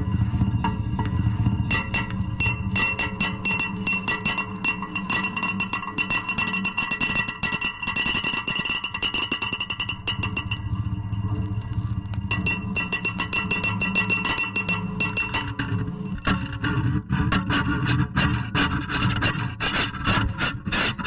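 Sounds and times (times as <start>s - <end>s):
low electronic drone: 0.0s - 6.8s, 9.8s - 17.2s
crackling electronic clicks: 9.8s - 16.4s.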